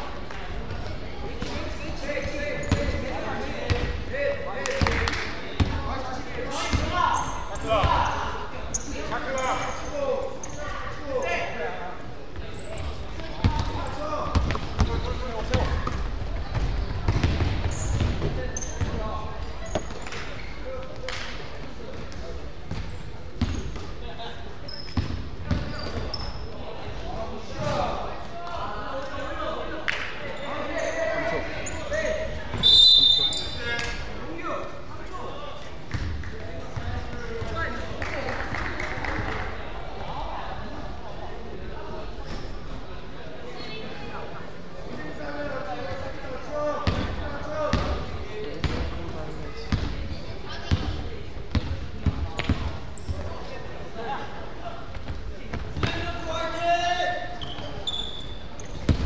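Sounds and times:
sneakers squeaking: 0:00.4 - 0:04.0, 0:04.8 - 0:27.9, 0:30.2 - 0:34.2, 0:35.8 - 0:38.0, 0:46.8 - 0:59.0
shrill whistle blast: 0:32.6 - 0:33.5.

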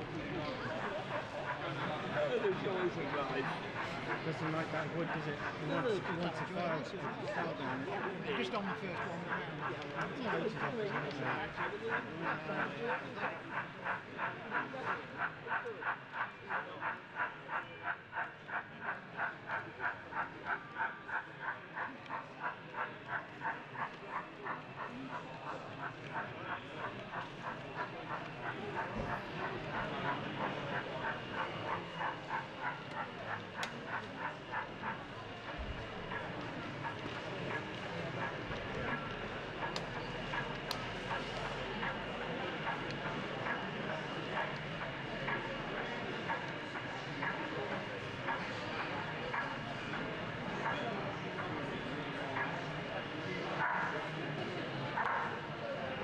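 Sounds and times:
exhibition hall background noise: 0:00.0 - 0:56.0
model steam locomotive chuffing: 0:00.0 - 0:56.0.

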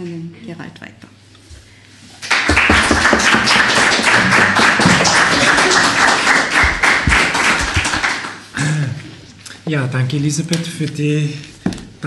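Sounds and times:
audience applauding: 0:02.2 - 0:08.5.

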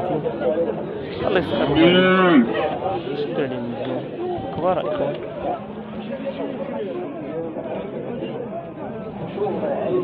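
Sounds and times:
men talking: 0:00.0 - 0:07.9
cow mooing: 0:01.3 - 0:02.6.

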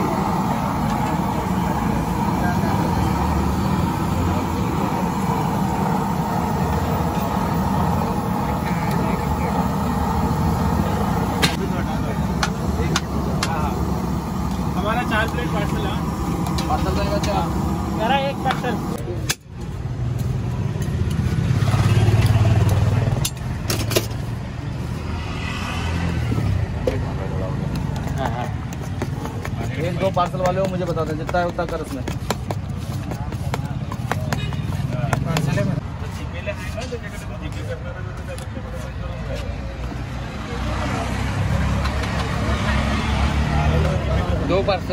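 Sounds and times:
chatter of voices: 0:00.0 - 0:19.3
people talking: 0:00.0 - 0:19.4, 0:26.8 - 0:44.9
low street rumble: 0:00.0 - 0:44.9.

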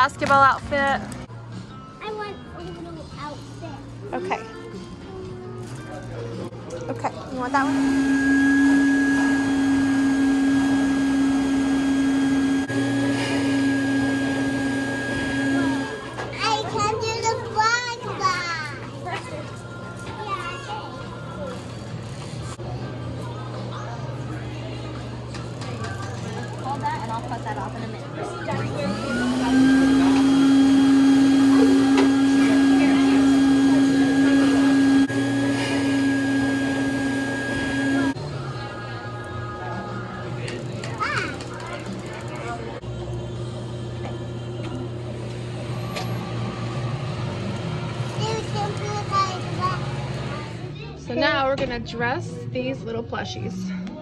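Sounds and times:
blower motor humming: 0:07.3 - 0:16.4, 0:26.2 - 0:50.7.

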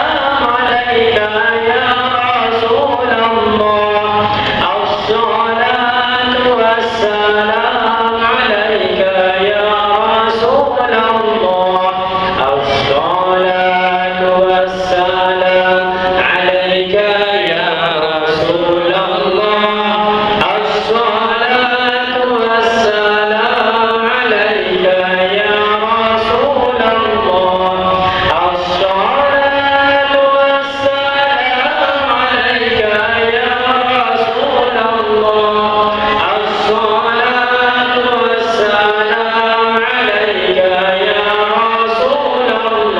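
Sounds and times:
men chanting: 0:00.0 - 0:42.9.

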